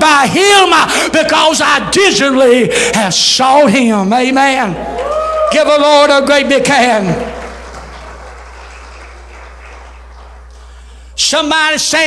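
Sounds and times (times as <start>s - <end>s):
congregation clapping: 4.8s - 11.3s
steady low hum: 6.1s - 12.0s.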